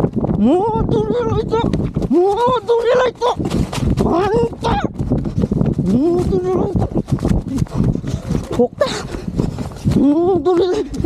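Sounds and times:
high-pitched voice laughing: 0:10.0 - 0:11.0.

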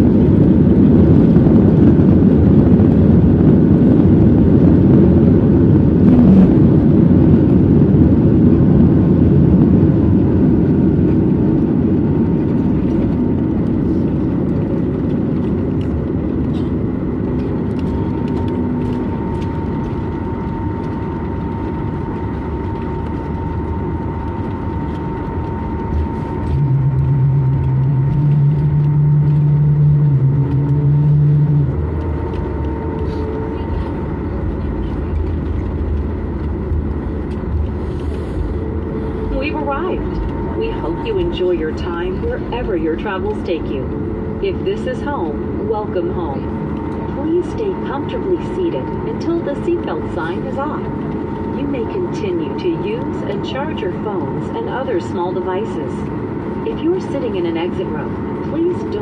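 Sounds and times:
low steady hum: 0:00.0 - 0:59.0
rumble of engines and runway: 0:00.0 - 0:59.0.

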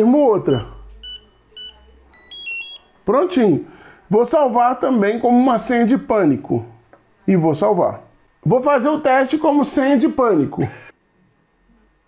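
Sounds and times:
short high beeps: 0:00.5 - 0:02.9.

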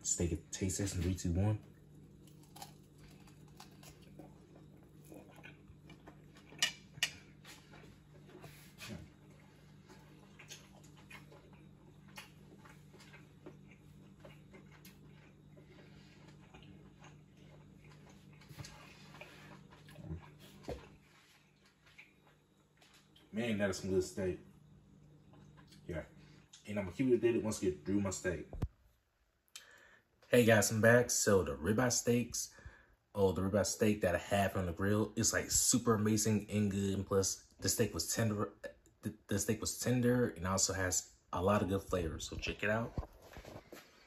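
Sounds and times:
low steady hum: 0:00.0 - 0:44.0
faint chewing: 0:01.0 - 0:23.3, 0:25.0 - 0:26.7.

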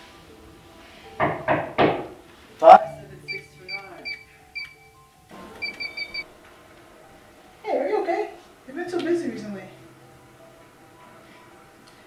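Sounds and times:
knock on door: 0:01.2 - 0:02.2
keypad lock beeps: 0:02.7 - 0:04.9, 0:05.6 - 0:06.2.

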